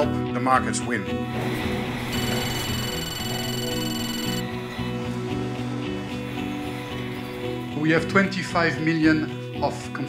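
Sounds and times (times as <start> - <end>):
background music sustained tones: 4.4 - 9.6.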